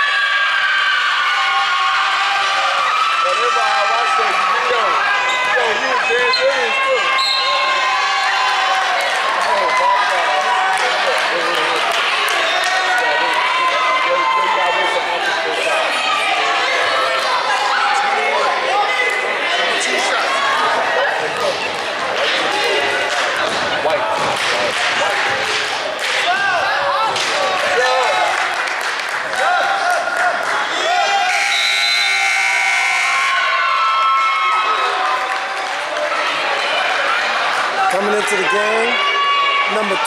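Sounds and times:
chatter and shouts: 0.0s - 40.0s.

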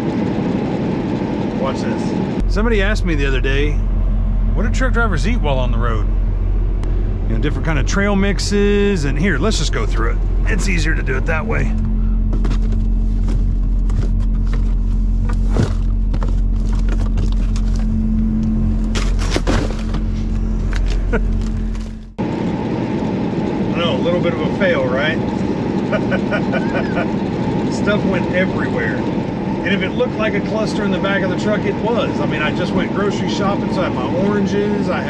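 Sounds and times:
truck cab road noise: 0.0s - 35.0s
truck engine idling: 0.0s - 35.0s
man talking: 1.6s - 3.8s, 4.6s - 6.1s, 7.2s - 11.8s, 27.7s - 29.0s, 29.7s - 35.0s
crinkles and knocks: 12.3s - 18.0s, 18.9s - 22.0s.

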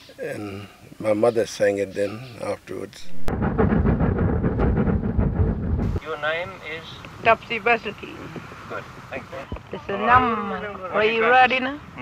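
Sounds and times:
steam train rumbling and rattling: 3.3s - 8.3s.

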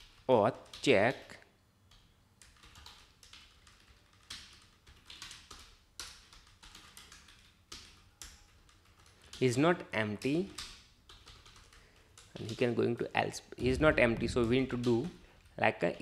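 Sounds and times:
keyboard typing: 1.9s - 12.8s, 13.6s - 15.5s.

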